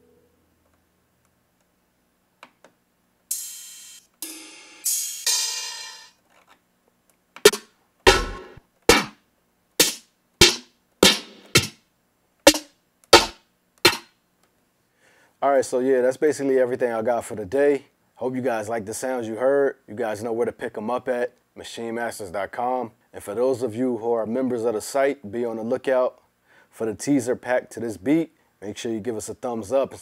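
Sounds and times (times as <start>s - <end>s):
hissy percussion hits: 3.3s - 6.2s, 7.5s - 9.1s, 9.8s - 11.8s, 12.5s - 14.1s
snare drum hits: 7.4s - 9.2s, 9.8s - 11.8s, 12.5s - 14.1s.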